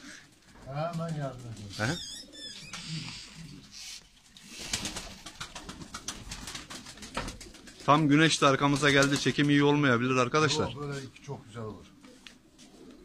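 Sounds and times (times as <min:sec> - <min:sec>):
pigeons cooing: 0:00.0 - 0:09.5, 0:10.4 - 0:13.0.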